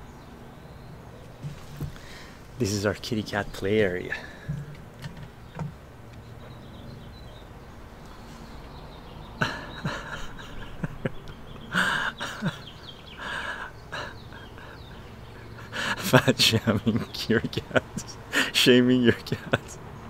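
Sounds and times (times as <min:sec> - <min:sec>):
man laughing quietly: 0:03.9 - 0:04.7, 0:09.2 - 0:20.0.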